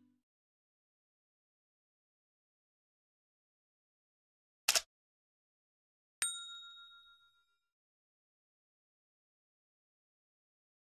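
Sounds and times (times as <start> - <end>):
notification bell ding: 6.2 - 7.7.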